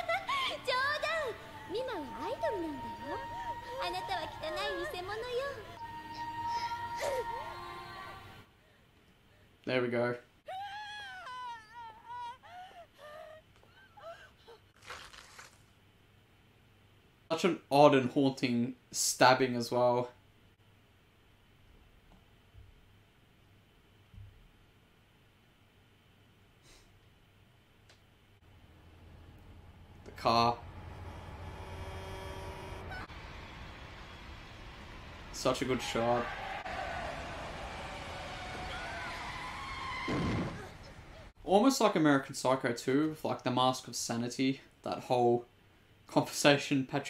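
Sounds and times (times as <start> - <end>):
woman crying and whimpering: 6.2 - 7.9, 10.5 - 14.7
woman gasping: 12.3 - 14.7
low rumble: 28.4 - 41.4.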